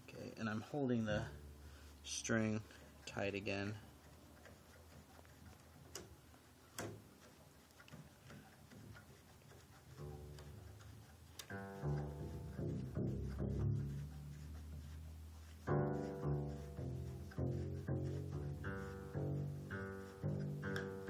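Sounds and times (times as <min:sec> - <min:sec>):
string and tuning gear clicks: 0:03.0 - 0:14.2, 0:15.6 - 0:21.0
double bass string plucked: 0:11.5 - 0:21.0.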